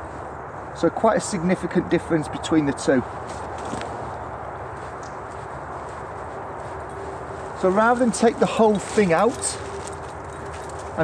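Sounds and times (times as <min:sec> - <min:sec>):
dry bracken rustling: 0:02.8 - 0:11.0.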